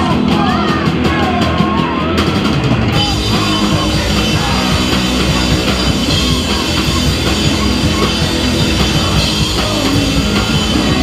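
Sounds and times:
bass guitar: 0.0 - 11.0
drum kit: 0.0 - 11.0
electric guitars: 0.0 - 11.0.

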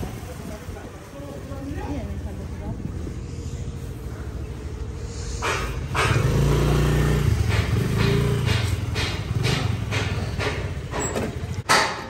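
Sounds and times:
motorcycle engine drone: 0.0 - 11.7.

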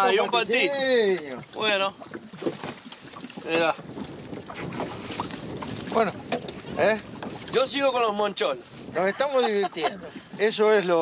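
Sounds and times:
river water: 0.0 - 11.0
wind: 0.0 - 11.0.

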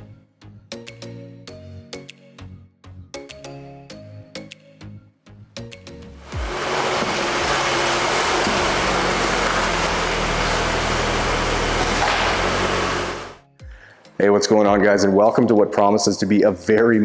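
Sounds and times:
loud rushing noise: 6.2 - 13.4.

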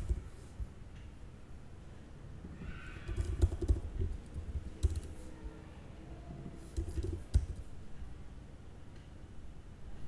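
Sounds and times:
computer keyboard typing: 0.0 - 0.4, 3.0 - 5.3, 6.7 - 7.7.

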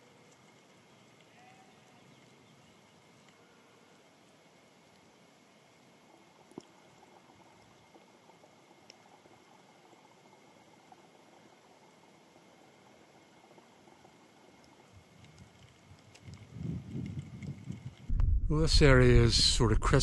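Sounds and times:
faint outdoor hiss: 0.0 - 20.0
low irregular rumble: 15.0 - 20.0.

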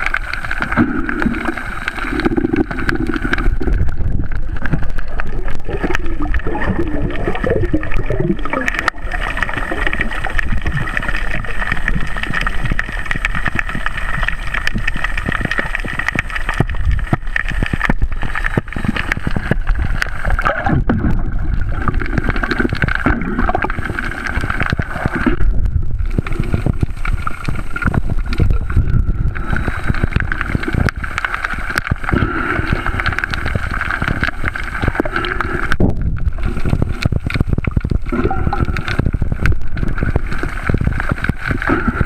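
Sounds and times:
low rumble: 0.0 - 42.0
muffled underwater rushing: 0.0 - 42.0.

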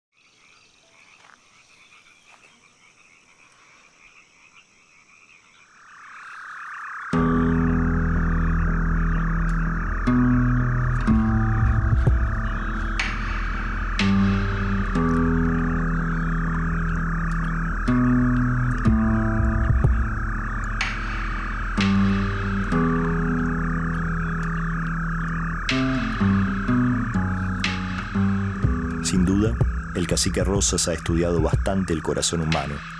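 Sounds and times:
frogs chorus: 0.1 - 32.9
music with sustained bass notes: 7.2 - 32.9.

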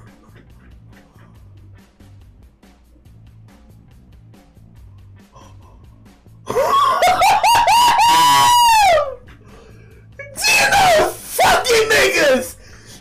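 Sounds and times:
faint background music: 0.0 - 13.0
laughter: 6.5 - 8.4
man yelling in excitement: 6.7 - 9.2, 10.2 - 12.6.

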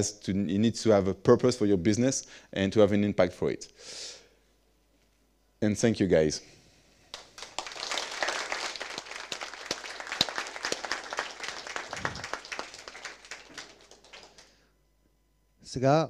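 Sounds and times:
audience applauding: 7.1 - 14.6.

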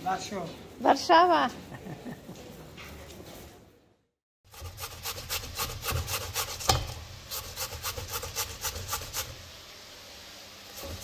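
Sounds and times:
potato grating on metal grater: 4.5 - 9.4, 10.7 - 11.0.

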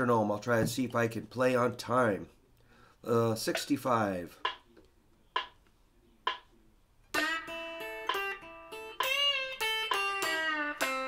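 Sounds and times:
metronome clicking: 7.2 - 11.0.

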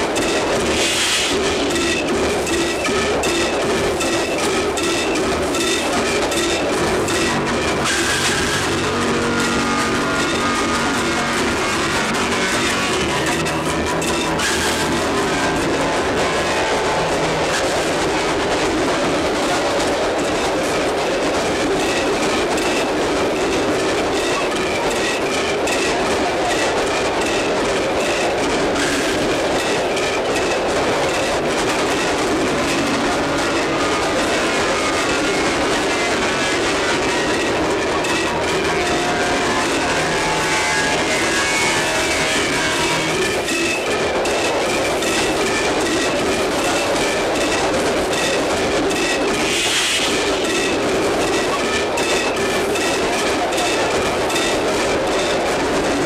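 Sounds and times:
train carriages rattling on rails: 0.0 - 56.0.

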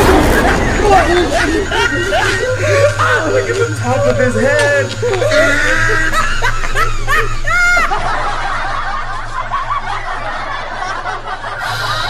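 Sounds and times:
high snickering laughs: 0.0 - 3.8, 5.0 - 12.0
many people laughing: 0.0 - 12.0.

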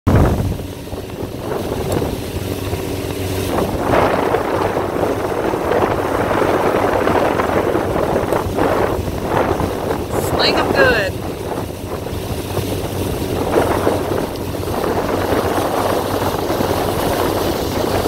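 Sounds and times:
motorboat engine running: 0.1 - 18.0
water rushing from wake: 0.1 - 18.0
wind on microphone: 0.1 - 18.0.

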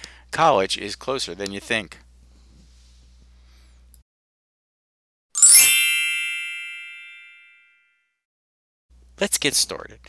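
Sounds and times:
bright chime: 5.4 - 7.8.

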